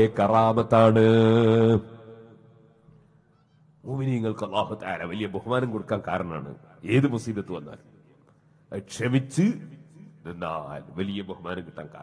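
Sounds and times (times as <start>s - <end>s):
man chanting: 0.0s - 2.4s.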